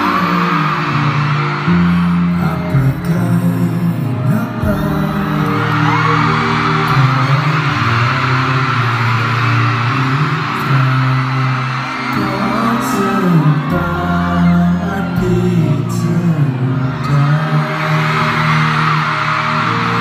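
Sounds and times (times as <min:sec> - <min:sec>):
men singing pop song: 0:00.0 - 0:20.0.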